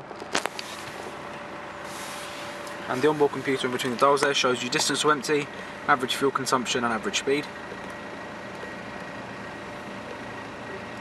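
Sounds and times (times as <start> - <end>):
diesel engine idling: 0.0 - 11.0.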